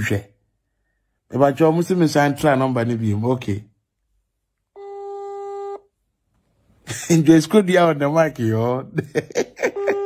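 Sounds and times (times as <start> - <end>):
electronic telephone tone: 4.8 - 5.9.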